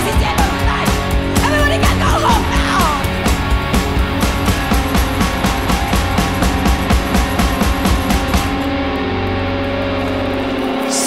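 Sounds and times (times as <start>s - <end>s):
live rock music with electric guitar: 0.0s - 11.0s.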